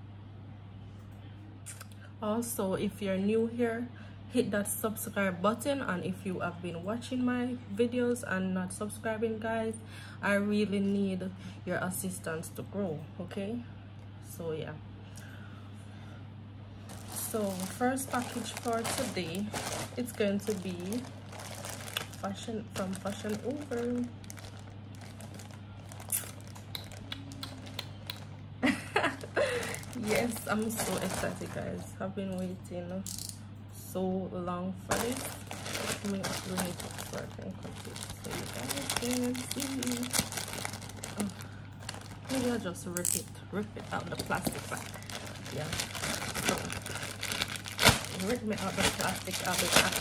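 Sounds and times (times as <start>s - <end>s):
steady low hum: 0.0s - 50.0s
plastic mailer bag crinkling: 16.8s - 28.3s, 29.0s - 31.8s, 34.9s - 42.9s, 43.6s - 50.0s.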